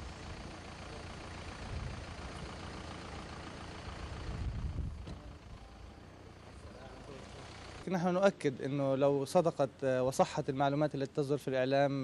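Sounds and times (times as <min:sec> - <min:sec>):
passing vehicles engine rumble: 0:00.0 - 0:12.0.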